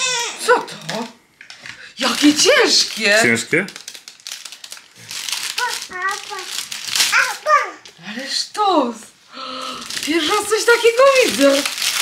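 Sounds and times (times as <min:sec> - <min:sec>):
cellophane crinkling: 0:00.0 - 0:08.0, 0:09.5 - 0:12.0
toddler babbling: 0:05.6 - 0:08.0.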